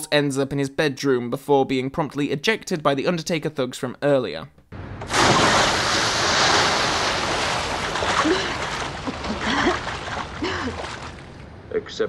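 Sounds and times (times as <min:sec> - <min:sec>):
loud splash into pool: 0:05.0 - 0:11.3
water churning and sloshing: 0:05.0 - 0:11.6.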